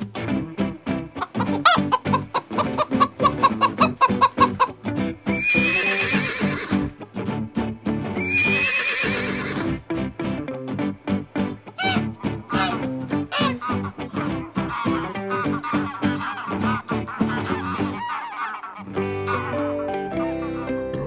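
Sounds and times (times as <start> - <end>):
music with a steady beat: 0.0 - 5.8, 6.4 - 8.5, 9.6 - 18.0
chickens clucking: 0.0 - 7.0, 10.9 - 21.0
horse whinnying: 5.4 - 6.9, 8.2 - 9.8.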